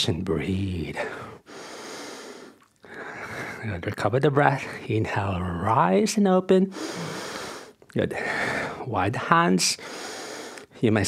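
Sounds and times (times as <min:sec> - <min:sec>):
man breathing into microphone: 0:06.7 - 0:07.8.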